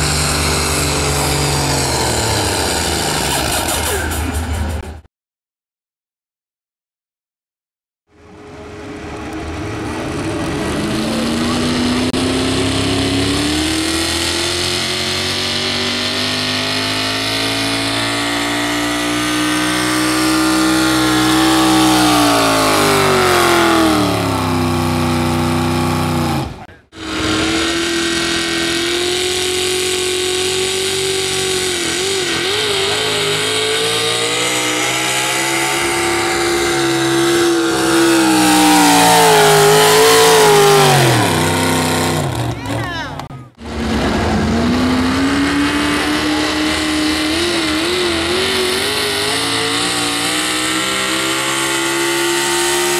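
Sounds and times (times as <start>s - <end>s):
pickup truck engine revving: 0.0s - 5.0s, 8.1s - 52.9s.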